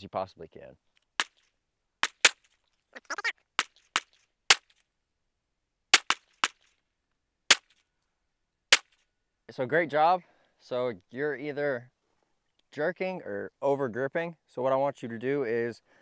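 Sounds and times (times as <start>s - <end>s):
quieter sharp cracks: 1.0s - 2.8s, 3.5s - 4.9s, 5.9s - 6.8s, 7.5s - 7.9s, 8.7s - 9.1s.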